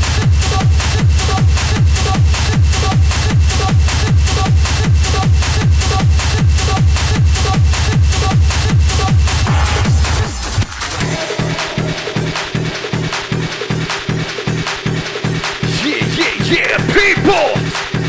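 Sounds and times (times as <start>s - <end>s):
fast techno kick drum: 0.0s - 10.4s, 11.0s - 18.0s.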